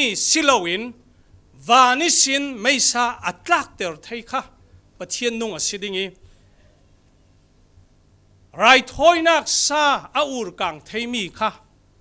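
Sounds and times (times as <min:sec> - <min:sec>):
man's voice: 0:01.6 - 0:06.1, 0:08.6 - 0:11.6.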